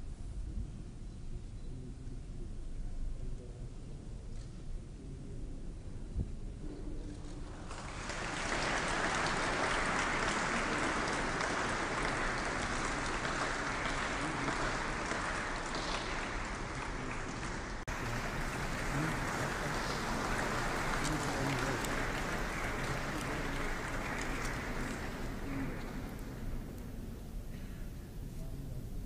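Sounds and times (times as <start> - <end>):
audience applauding: 7.5 - 27.8.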